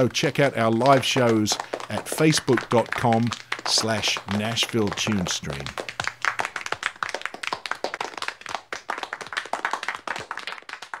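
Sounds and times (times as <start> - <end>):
small audience clapping: 0.0 - 11.0.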